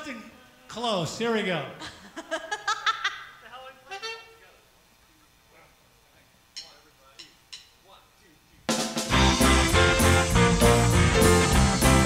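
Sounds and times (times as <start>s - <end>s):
person laughing: 1.8s - 4.2s
live band with drum kit: 8.7s - 12.0s.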